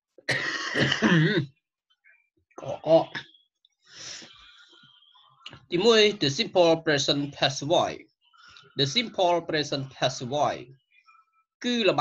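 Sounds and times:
person clearing throat: 0.3 - 1.5.

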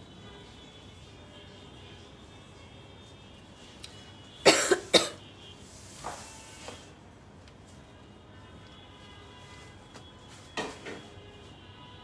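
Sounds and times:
woman coughing: 4.4 - 5.2.

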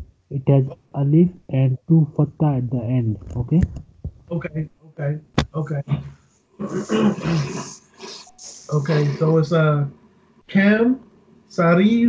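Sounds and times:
person coughing harshly: 5.9 - 7.7.

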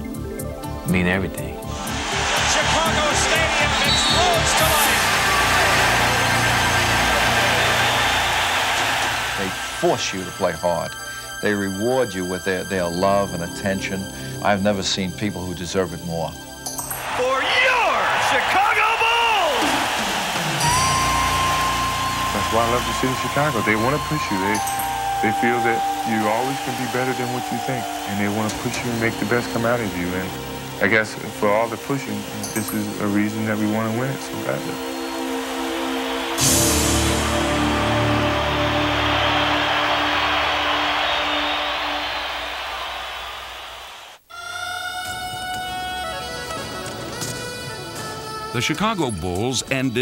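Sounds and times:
music with held tones: 0.0 - 18.0, 20.6 - 42.5, 44.3 - 50.0
crowd cheering: 1.7 - 10.8, 16.9 - 44.3
announcer's drawn-out shout: 17.0 - 19.9
music with low held note: 20.7 - 41.1.

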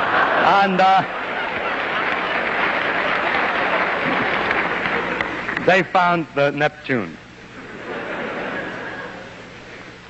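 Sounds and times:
audience laughing: 0.0 - 5.6, 7.4 - 10.0
audience clapping: 0.0 - 5.9.

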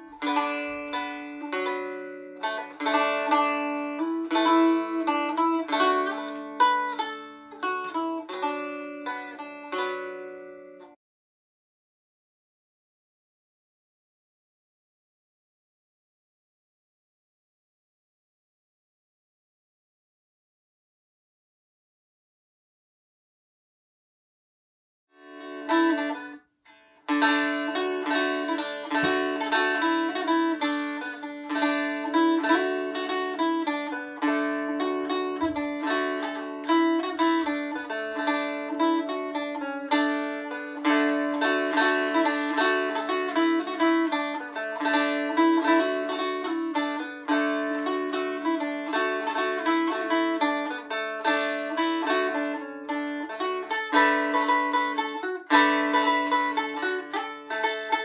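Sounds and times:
plucked stick dulcimer melody: 0.0 - 11.0, 25.2 - 26.4, 27.1 - 58.0.

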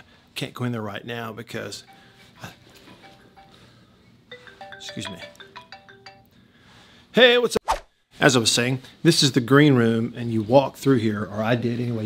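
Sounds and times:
faint phone ringtone: 1.6 - 6.9
man speaking: 4.8 - 5.4.

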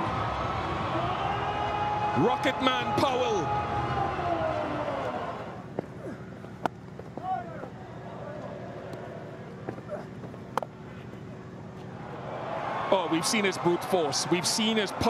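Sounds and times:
spectators shouting: 0.0 - 5.7, 12.0 - 15.0
stadium crowd noise: 0.0 - 15.0.

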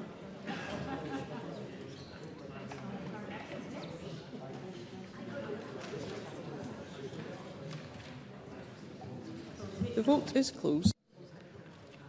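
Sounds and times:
murmur of people chatting: 0.0 - 12.0.

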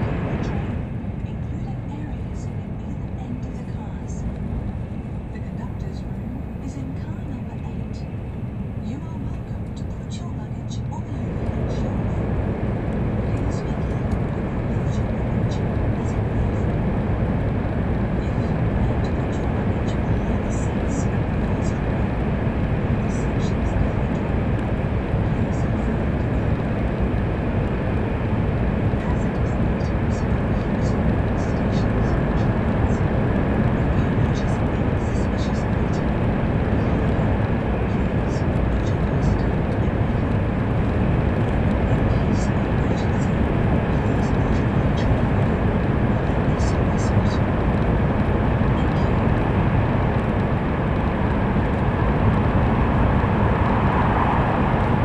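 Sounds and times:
train rushing in tunnel: 0.0 - 55.0.

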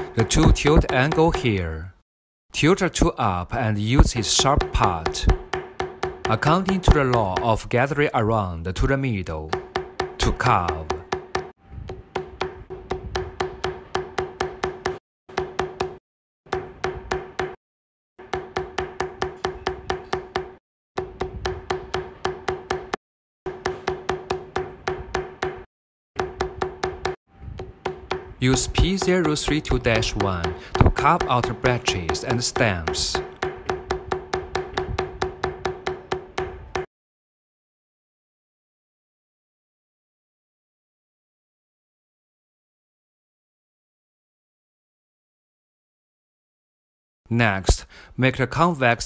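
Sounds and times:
mallet striking metal stamping tool: 0.0 - 1.6, 3.8 - 8.2, 9.2 - 17.6, 18.2 - 36.9.

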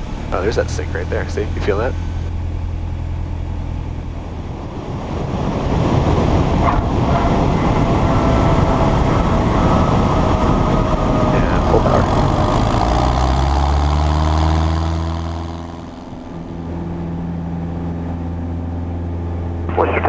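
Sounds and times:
rushing wind: 0.0 - 19.7
aircraft engine idling: 0.0 - 20.0
runway rumble of wheels: 0.0 - 20.0.

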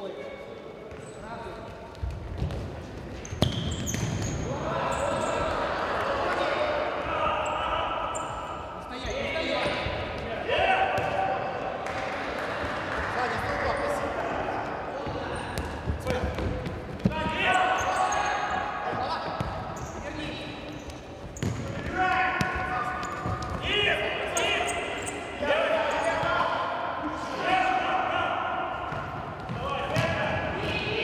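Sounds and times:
ball kicked and bouncing: 1.9 - 4.3, 11.0 - 11.2, 15.0 - 17.2, 21.3 - 21.8
players shouting in echoing hall: 3.4 - 31.0.

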